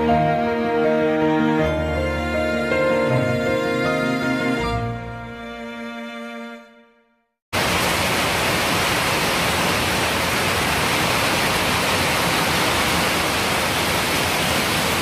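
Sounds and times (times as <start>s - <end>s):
heavy rain pouring: 7.6s - 15.0s.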